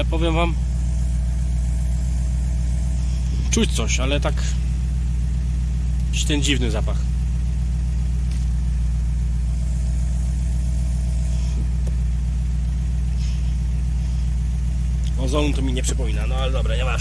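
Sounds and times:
ozone generator humming: 0.0s - 17.0s.

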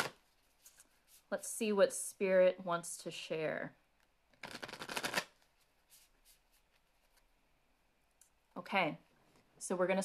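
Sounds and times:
cards being shuffled: 4.3s - 7.3s
cards tapping: 4.4s - 5.3s.

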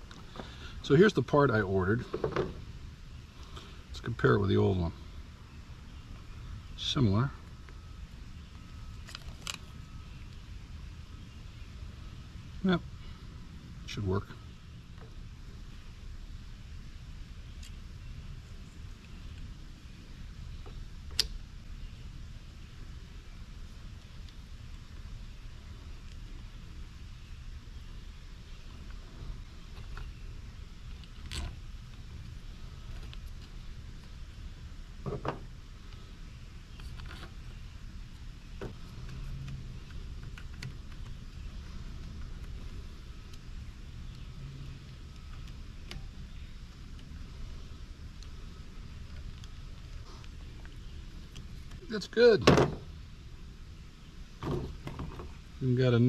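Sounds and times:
steady low rumble: 0.0s - 56.0s.

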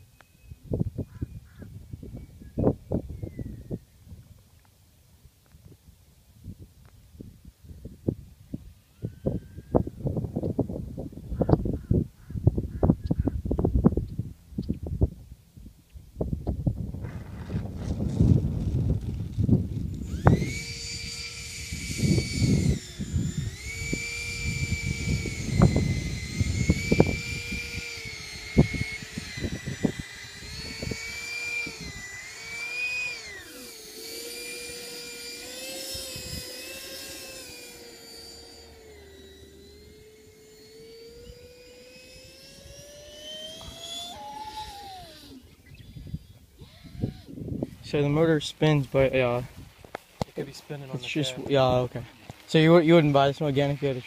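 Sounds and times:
wind rumble on microphone: 0.5s - 4.5s, 5.2s - 32.2s, 35.9s - 36.7s, 44.5s - 49.9s
electric ducted-fan motor whining: 7.9s - 15.1s, 16.4s - 54.0s.

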